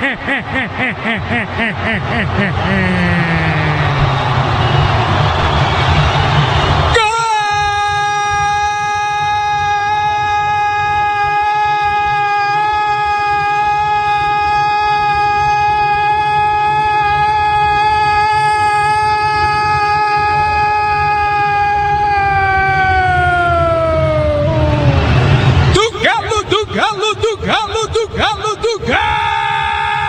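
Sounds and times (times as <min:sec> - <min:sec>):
commentator's long held shout: 0:06.8 - 0:30.0.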